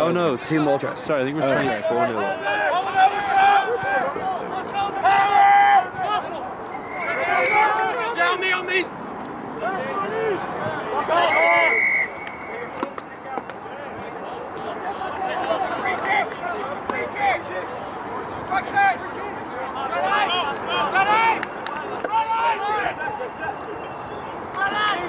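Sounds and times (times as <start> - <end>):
general chatter: 0.0 - 25.0
people shouting: 2.2 - 8.9, 9.6 - 12.7, 19.8 - 23.8, 24.5 - 25.0.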